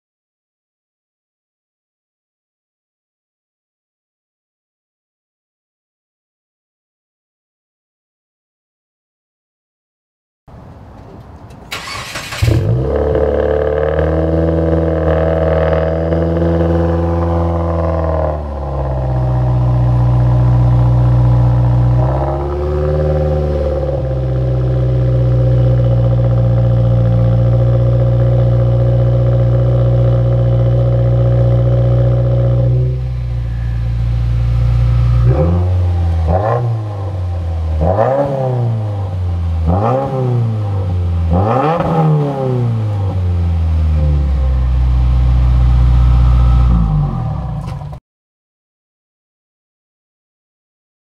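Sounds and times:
engine throttle blips: 11.0s - 48.0s
car engine idling: 18.4s - 41.5s, 42.7s - 48.0s.

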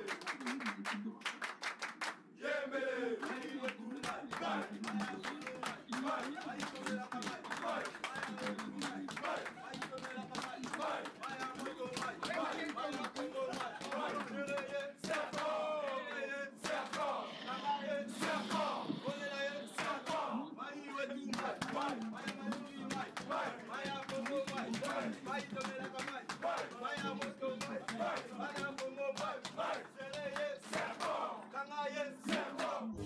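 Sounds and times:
sharp claps: 0.0s - 2.2s, 3.2s - 16.0s, 16.6s - 17.2s, 19.8s - 20.3s, 21.3s - 31.2s
group chanting and shouting: 2.2s - 33.0s.

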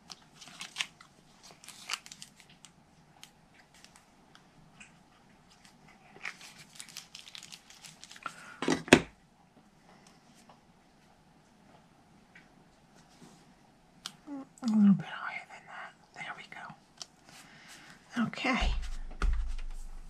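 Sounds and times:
paper rustling: 0.0s - 2.7s, 5.5s - 8.3s.

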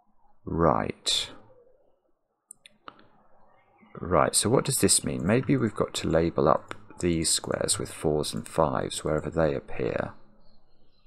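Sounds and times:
faint sharp clicks: 2.5s - 3.1s.

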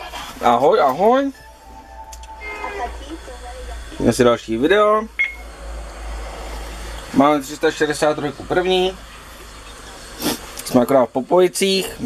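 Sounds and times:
steady low hum: 0.1s - 10.6s
short high electronic beep: 1.3s - 3.1s.

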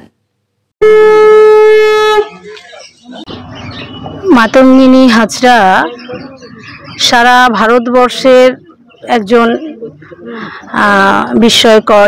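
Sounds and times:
conch shell blown: 0.8s - 2.5s.

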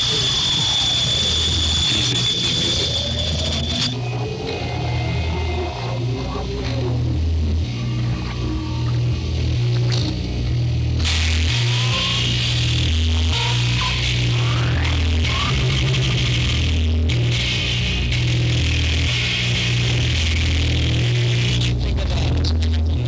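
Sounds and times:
rising whistle-like glides: 0.0s - 4.3s
hissing static: 0.0s - 23.0s
low bass drone: 0.0s - 23.0s.

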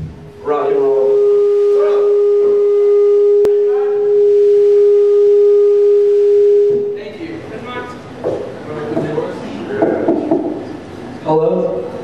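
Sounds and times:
loud steady pure tone: 0.0s - 12.0s.

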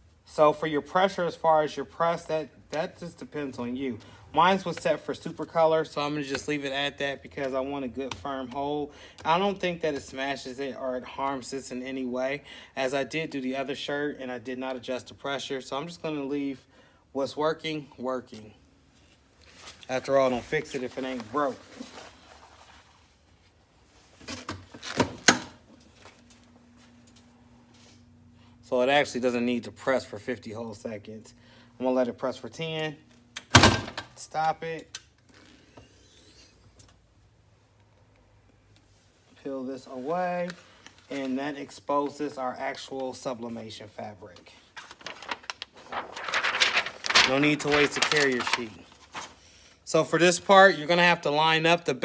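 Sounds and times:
paper rustling: 19.4s - 27.0s, 39.9s - 43.5s, 44.2s - 49.4s
faint steady hum: 21.2s - 41.9s
plastic sheet crinkling: 44.6s - 49.3s.

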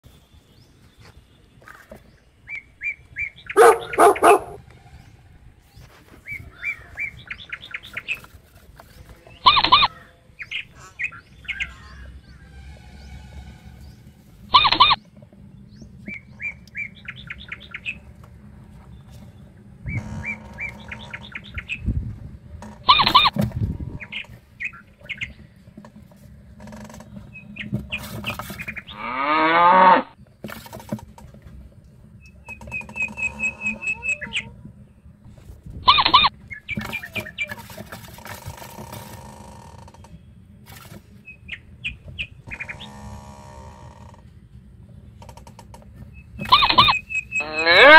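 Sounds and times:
loud pitched animal call: 14.5s - 15.0s, 33.2s - 34.6s, 35.8s - 36.3s, 46.4s - 47.9s
small animal rapid chirps: 14.5s - 15.0s, 35.8s - 37.6s, 46.4s - 47.7s.

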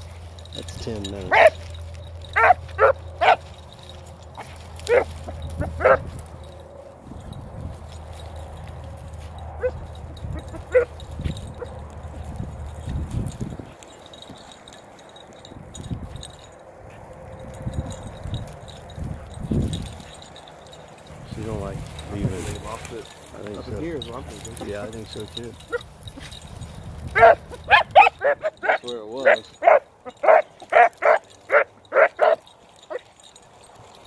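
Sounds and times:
dogs barking: 0.0s - 6.8s, 9.1s - 12.3s, 23.0s - 26.4s, 27.1s - 33.3s
dog baying: 1.2s - 6.8s, 9.3s - 12.2s, 27.1s - 33.2s.

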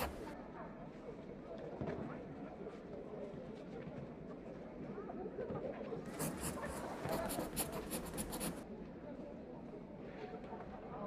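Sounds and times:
pencil writing on paper: 0.0s - 0.4s, 6.1s - 8.6s.

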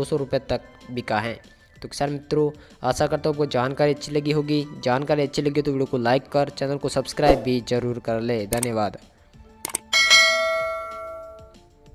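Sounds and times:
quick mouse clicks: 9.6s - 9.8s
bell ding: 9.9s - 11.6s.

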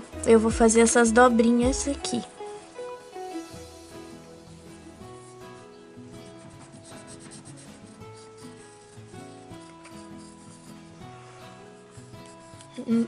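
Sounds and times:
soft background music: 0.0s - 13.0s
pencil scratching on paper: 4.6s - 13.0s.

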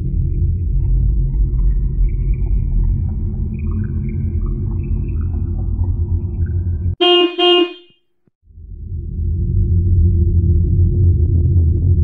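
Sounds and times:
low steady rumble: 0.0s - 7.6s, 8.5s - 12.0s
car horn honks: 7.0s - 8.0s.

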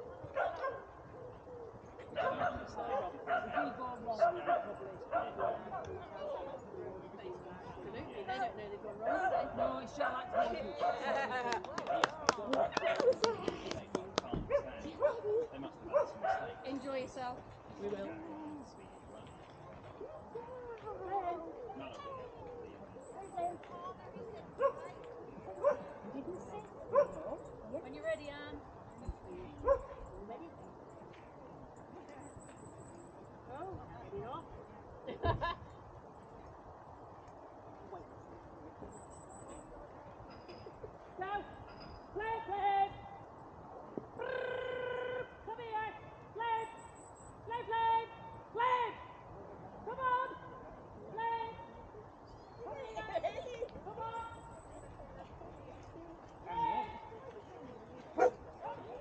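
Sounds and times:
faint distant voices: 0.0s - 59.0s
dog barking: 0.3s - 0.9s, 2.2s - 5.8s, 14.5s - 15.3s, 15.9s - 16.6s, 25.6s - 25.9s, 26.9s - 27.3s, 29.6s - 30.0s.

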